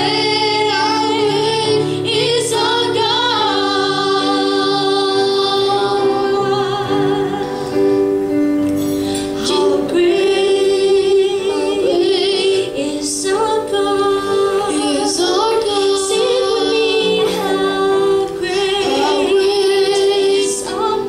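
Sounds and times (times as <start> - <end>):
boy singing into a microphone: 0.0 - 7.7, 9.3 - 21.0
piano accompaniment: 0.0 - 21.0.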